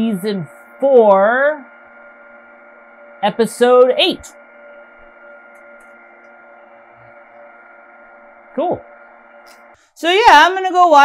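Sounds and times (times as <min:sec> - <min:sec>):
machine electrical hum: 0:00.0 - 0:11.0.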